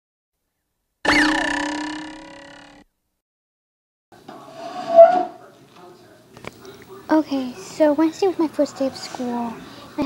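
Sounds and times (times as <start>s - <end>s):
ringing tones with pitch sweep: 1.1s - 2.8s.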